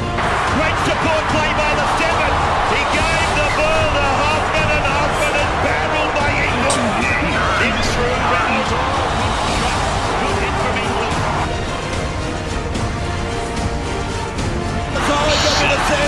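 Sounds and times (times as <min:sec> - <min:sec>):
music: 0:00.0 - 0:16.0
commentator speaking: 0:00.4 - 0:09.0, 0:15.0 - 0:16.0.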